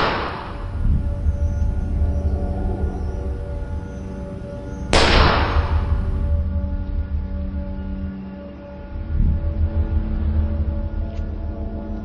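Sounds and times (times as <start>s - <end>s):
gunshot with reverberant tail: 0.0s - 0.9s, 4.9s - 6.3s
low music drone: 0.0s - 12.0s.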